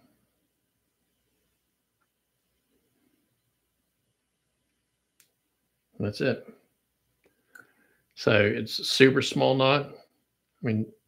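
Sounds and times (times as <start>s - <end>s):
faint sharp click: 5.2s - 5.4s.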